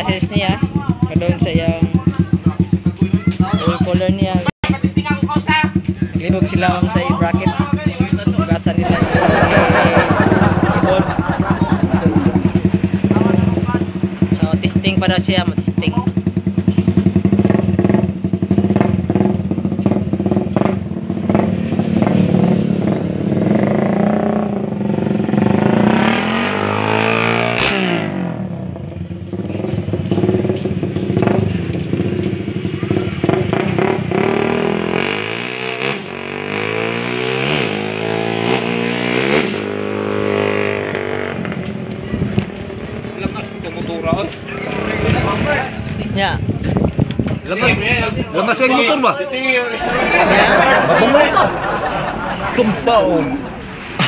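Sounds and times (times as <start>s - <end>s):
motorcycles revving and passing: 0.0s - 54.0s.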